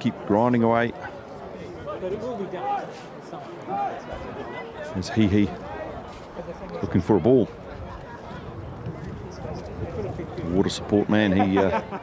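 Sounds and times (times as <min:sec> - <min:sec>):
faint voices: 0:00.0 - 0:12.0
outdoor ambience: 0:00.0 - 0:12.0.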